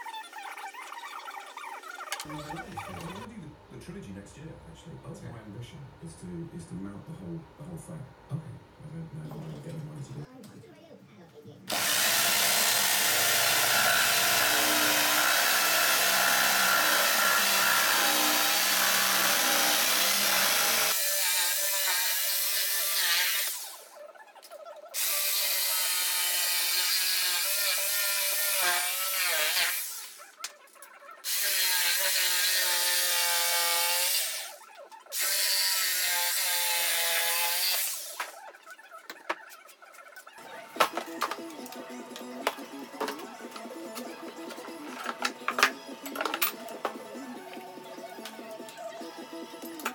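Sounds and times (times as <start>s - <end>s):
jigsaw cutting wood: 11.7s - 23.9s, 25.0s - 30.3s, 31.2s - 38.4s.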